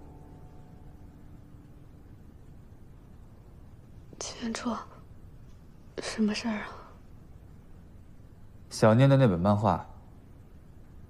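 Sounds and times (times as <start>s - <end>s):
woman speaking: 4.2s - 5.0s, 6.0s - 7.0s.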